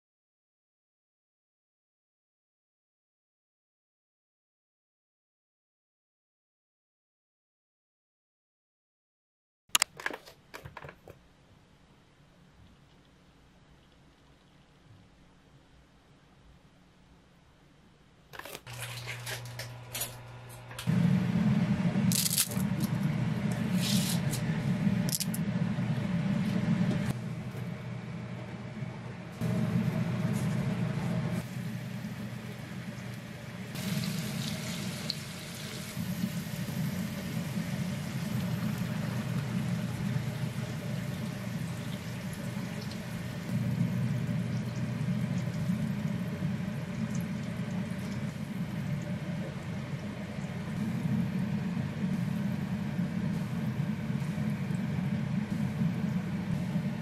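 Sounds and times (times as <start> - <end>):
steady low hum: 11.2 - 57.0
water boiling in a pot: 29.4 - 57.0.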